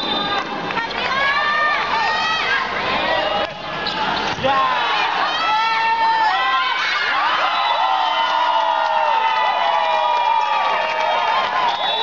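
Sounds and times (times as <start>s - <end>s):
crowd shouting and cheering: 0.0s - 12.0s
steady high whistle tone: 11.6s - 12.0s.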